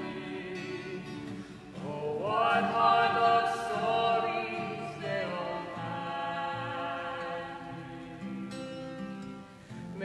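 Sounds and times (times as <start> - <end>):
person singing: 0.0 - 8.6.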